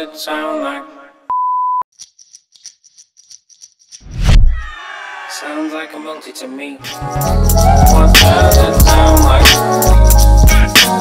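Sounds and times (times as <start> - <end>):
censor bleep tone: 1.3 - 1.9
rapid high ticks: 2.0 - 4.1
music: 6.8 - 11.0.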